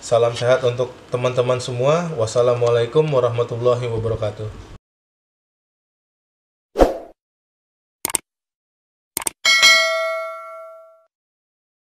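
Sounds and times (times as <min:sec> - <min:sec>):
mouse clicks: 0:09.2 - 0:09.4
notification bell ding: 0:09.4 - 0:11.1.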